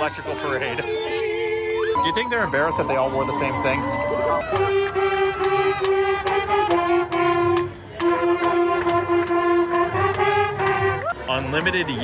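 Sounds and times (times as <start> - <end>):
marching band playing: 2.0 - 11.6
steady drum beat: 5.4 - 11.0.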